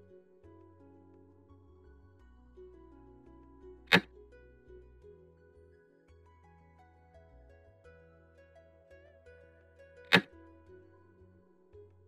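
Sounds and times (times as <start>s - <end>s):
plucked-string background music: 0.0s - 12.0s.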